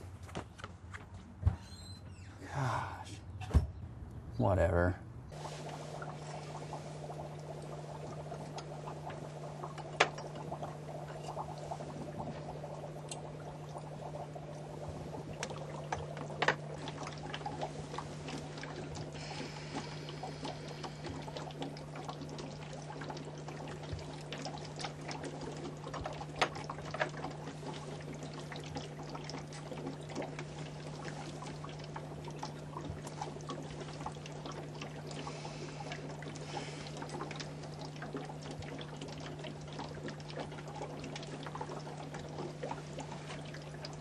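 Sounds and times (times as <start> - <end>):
steady low hum: 2.4 - 44.0
liquid bubbling and trickling: 5.3 - 44.0
small crackling pops: 5.4 - 44.0.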